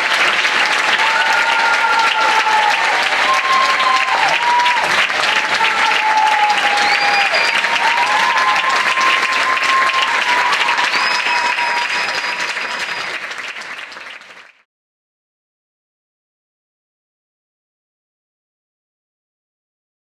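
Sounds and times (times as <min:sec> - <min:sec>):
high cheers: 0:00.0 - 0:14.1
audience applauding: 0:00.0 - 0:14.7.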